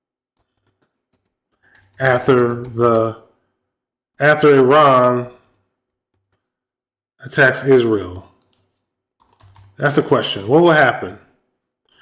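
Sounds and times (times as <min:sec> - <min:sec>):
faint keyboard typing: 0:00.4 - 0:03.4, 0:05.4 - 0:06.6, 0:08.3 - 0:10.0.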